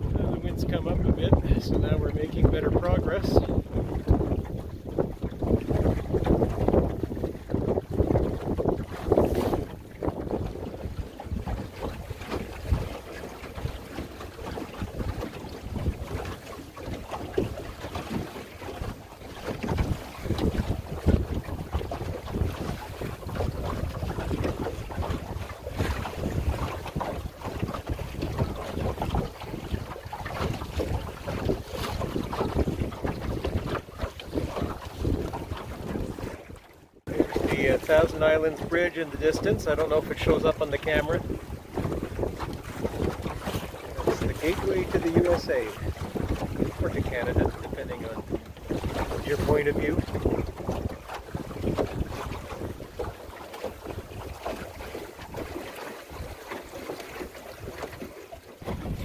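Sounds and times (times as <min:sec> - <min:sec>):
wind gusting over microphone: 0:00.0 - 0:55.6, 0:58.6 - 0:59.0
water washing along boat hull: 0:00.0 - 0:59.0.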